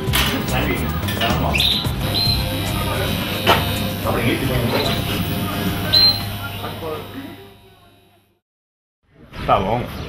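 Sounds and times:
background music: 0.0s - 7.2s
bird chirping: 0.4s - 2.6s, 5.8s - 6.3s.

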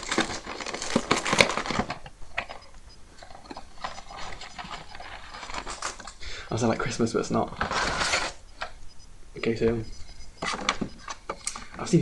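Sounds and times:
packaging rustling: 0.0s - 8.4s.

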